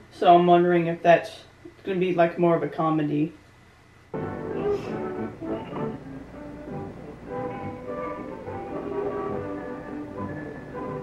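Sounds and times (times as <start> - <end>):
orchestral music with brass: 4.2 - 11.0.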